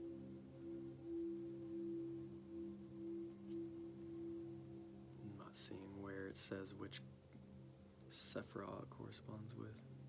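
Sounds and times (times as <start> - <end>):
ambient drone music: 0.0 - 10.0.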